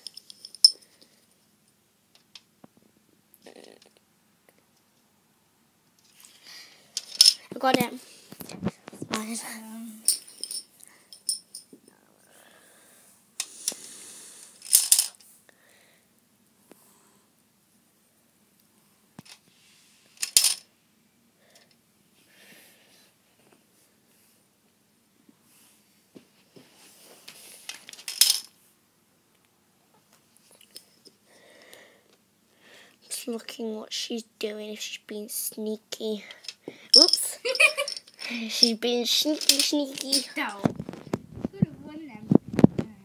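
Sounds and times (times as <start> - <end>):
plastic checker clattering in grid: 39.2 - 41.1.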